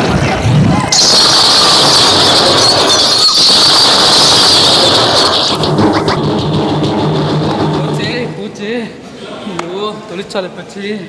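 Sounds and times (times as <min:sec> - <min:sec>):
high-pitched hiss with squeal: 0:00.9 - 0:06.2.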